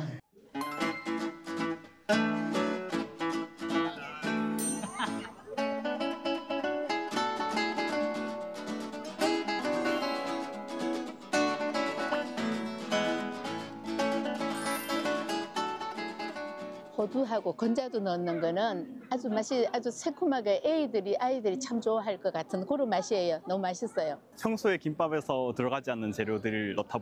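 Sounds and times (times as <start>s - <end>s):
acoustic guitar music: 0.5s - 17.8s.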